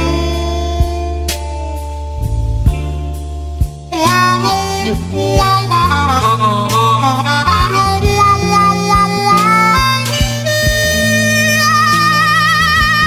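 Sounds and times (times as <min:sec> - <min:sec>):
blues band playing: 0:00.0 - 0:13.0
harmonica bending phrases: 0:00.0 - 0:13.0.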